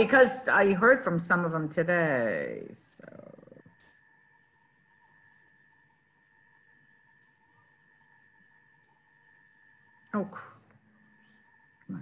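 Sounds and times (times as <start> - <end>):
faint high-pitched tone: 9.4 - 12.0.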